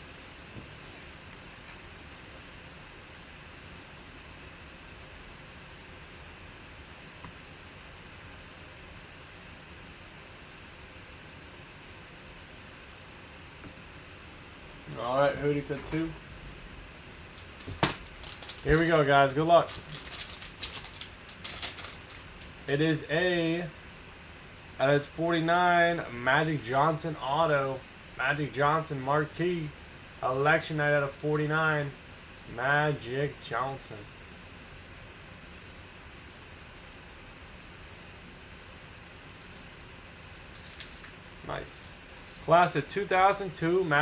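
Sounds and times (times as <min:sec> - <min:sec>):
low hiss and hum: 0:00.0 - 0:44.0
plastic wrapper tearing and crinkling: 0:17.4 - 0:22.7, 0:40.6 - 0:41.2, 0:41.8 - 0:42.5.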